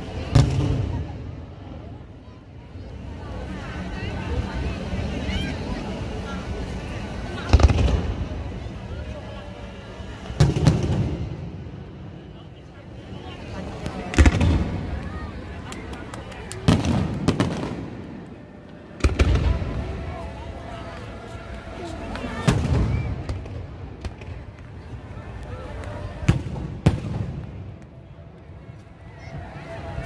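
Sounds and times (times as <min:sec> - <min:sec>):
crowd voices: 0:00.0 - 0:30.0
fireworks bangs: 0:07.4 - 0:08.6, 0:10.3 - 0:11.7, 0:13.8 - 0:15.7, 0:16.5 - 0:18.4, 0:19.0 - 0:20.0, 0:22.4 - 0:24.6, 0:26.2 - 0:27.7.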